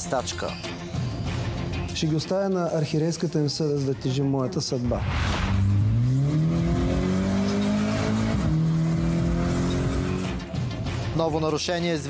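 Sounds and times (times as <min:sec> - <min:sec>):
short rush of noise: 0:04.9 - 0:06.0
car engine revving: 0:05.0 - 0:10.6.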